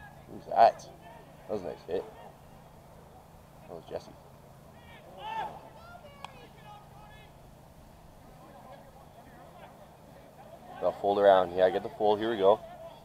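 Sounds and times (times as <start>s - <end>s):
distant players shouting: 0.0s - 13.0s
low outdoor background: 0.0s - 13.0s.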